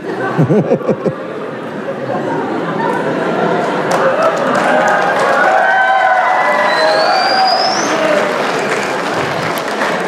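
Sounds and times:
audience applauding and cheering: 0:03.6 - 0:10.0
high rising whistle: 0:06.6 - 0:08.1.

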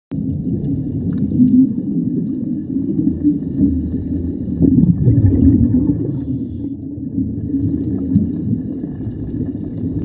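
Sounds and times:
underwater air bubbles: 0:00.1 - 0:10.0.

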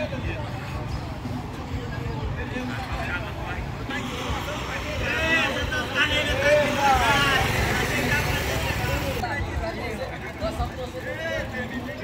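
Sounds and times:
voices calling out loudly: 0:00.0 - 0:10.0
motorcycle engines rumbling: 0:00.0 - 0:12.0.

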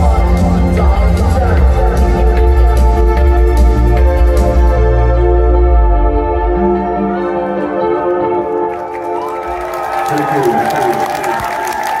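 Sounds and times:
crowd cheering and applause: 0:07.6 - 0:12.0.

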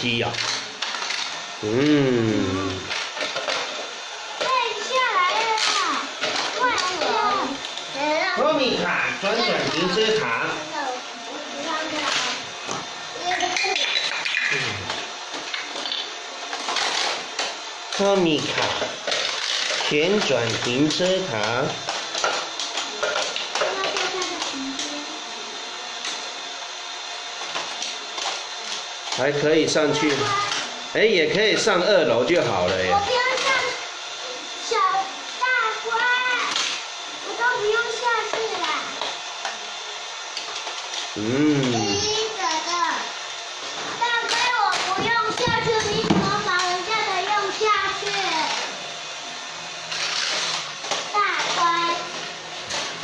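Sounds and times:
motorised toy whirring: 0:00.0 - 0:53.0
child's voice: 0:04.4 - 0:08.4, 0:10.6 - 0:12.5, 0:13.1 - 0:14.1, 0:23.6 - 0:25.2, 0:29.8 - 0:30.7, 0:32.9 - 0:36.6, 0:37.2 - 0:39.0, 0:41.4 - 0:43.1, 0:43.9 - 0:48.7, 0:51.1 - 0:52.2.

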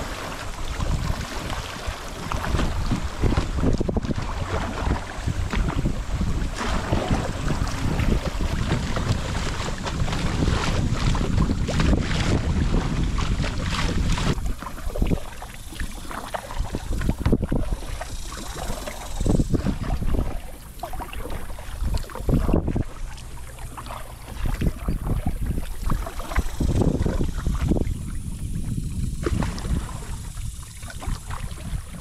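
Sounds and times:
paddle splashes: 0:00.0 - 0:32.0
water rushing and splashing: 0:00.0 - 0:32.0
wind buffeting microphone: 0:00.0 - 0:32.0.

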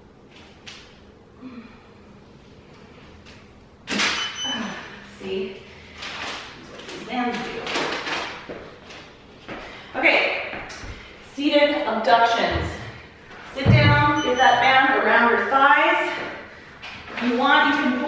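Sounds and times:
woman speaking: 0:04.5 - 0:05.7, 0:06.9 - 0:07.8, 0:10.0 - 0:10.6, 0:11.3 - 0:16.4, 0:17.2 - 0:18.0.

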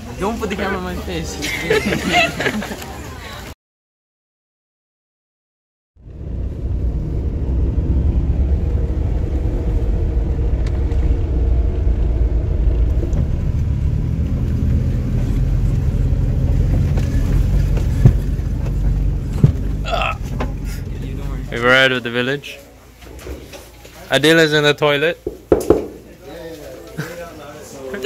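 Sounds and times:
vehicle engine and road rumble: 0:00.0 - 0:03.6, 0:06.0 - 0:28.0.

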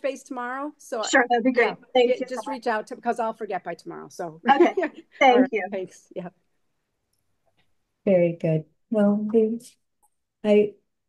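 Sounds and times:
person saying yeah: 0:01.0 - 0:02.6, 0:04.5 - 0:05.9.

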